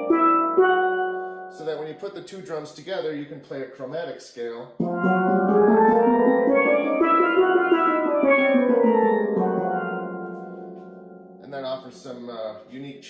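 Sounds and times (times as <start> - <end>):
steel pans played with mallets: 0.0 - 1.7, 4.8 - 11.4.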